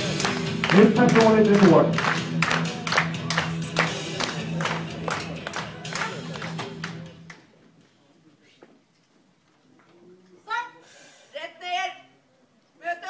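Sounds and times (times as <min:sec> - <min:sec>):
hands clapping rhythmically: 0:00.0 - 0:07.5.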